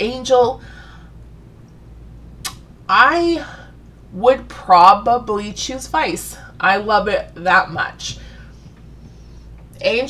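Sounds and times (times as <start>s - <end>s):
woman speaking: 0.0s - 0.6s, 2.9s - 8.4s, 9.8s - 10.0s
low room hum: 0.0s - 10.0s.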